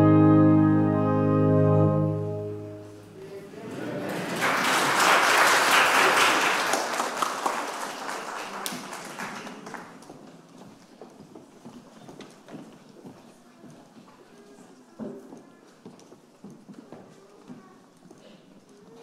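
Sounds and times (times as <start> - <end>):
audience applause: 3.7 - 10.2.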